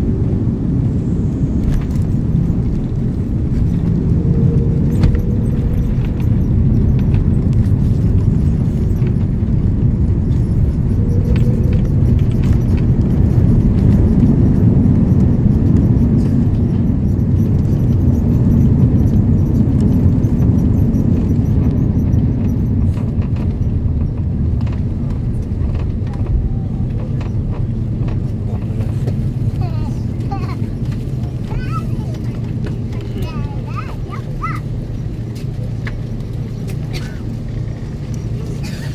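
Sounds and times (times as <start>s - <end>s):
low rumble of engines and wheels: 0.0s - 38.9s.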